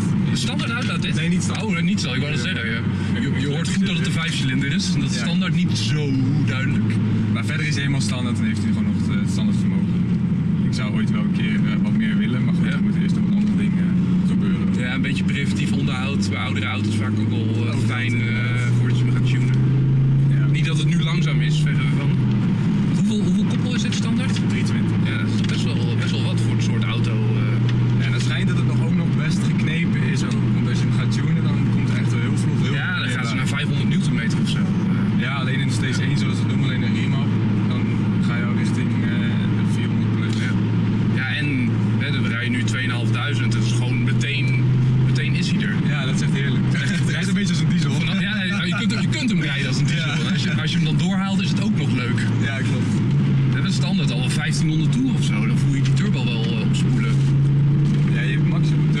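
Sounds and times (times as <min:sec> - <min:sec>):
car engine drone in cabin: 0:00.0 - 0:59.0
road noise: 0:00.0 - 0:59.0.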